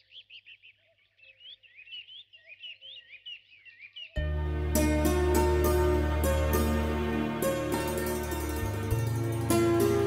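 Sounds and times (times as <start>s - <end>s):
small birds chirping: 0.0s - 4.2s
background music: 4.2s - 10.0s.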